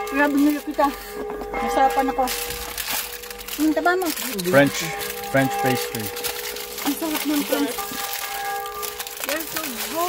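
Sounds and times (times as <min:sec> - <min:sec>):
paper wrapper crinkling: 0:00.0 - 0:10.0
voices talking: 0:03.6 - 0:06.2, 0:06.8 - 0:08.2.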